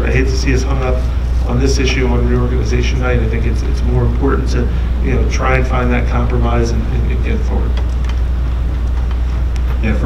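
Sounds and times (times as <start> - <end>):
loud low hum: 0.0 - 10.0.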